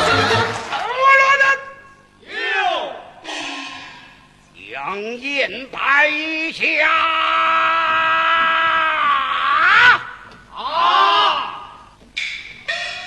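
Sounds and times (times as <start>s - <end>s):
opera accompaniment: 0.0s - 1.2s.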